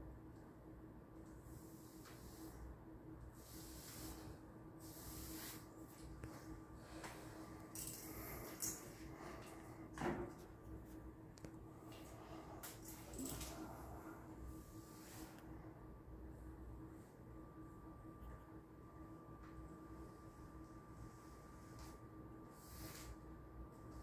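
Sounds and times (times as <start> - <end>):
faint steady hum: 0.0 - 24.0.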